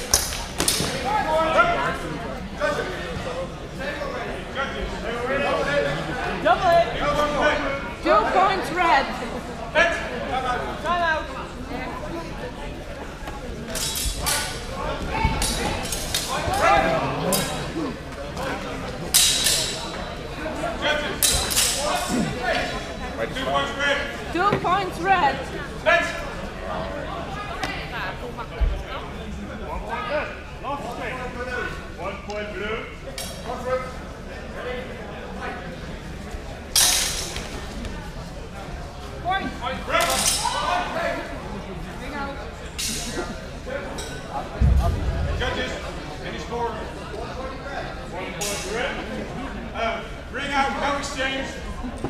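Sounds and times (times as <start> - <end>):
voices: 0.0 - 52.0
steel swords clashing: 19.2 - 19.9.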